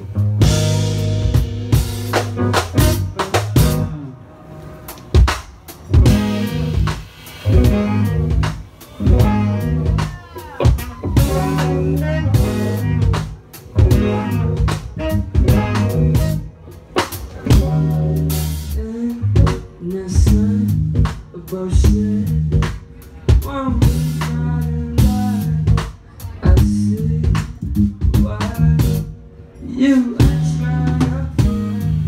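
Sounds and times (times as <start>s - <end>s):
live band playing: 0.0s - 32.0s
sustained bass notes: 0.0s - 32.0s
drum strikes: 4.9s - 16.4s.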